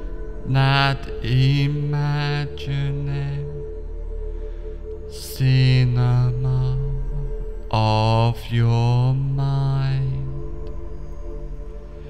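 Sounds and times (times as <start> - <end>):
chanted vocal phrases: 0.0 - 4.2, 5.0 - 11.8
low drone: 0.0 - 12.0.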